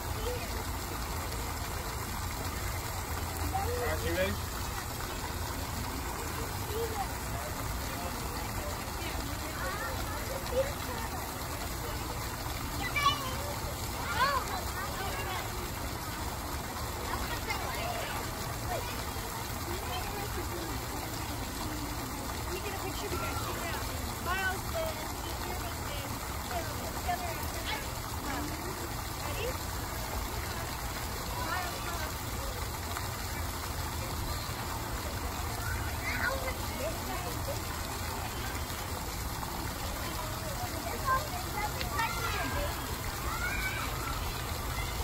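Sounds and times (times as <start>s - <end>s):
distant voices chattering: 0.0s - 45.0s
water jet splashing into pool: 0.0s - 45.0s.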